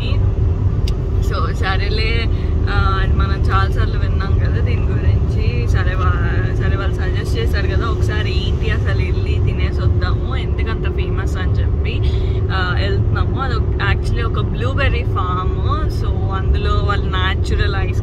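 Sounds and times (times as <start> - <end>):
woman talking: 0.0 - 0.2, 1.2 - 18.0
road rumble inside moving car: 0.0 - 18.0
steady hum: 0.0 - 18.0.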